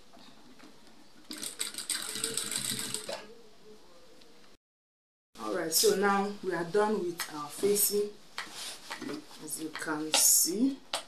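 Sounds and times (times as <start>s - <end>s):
sewing machine stitching rattle: 1.3s - 3.2s.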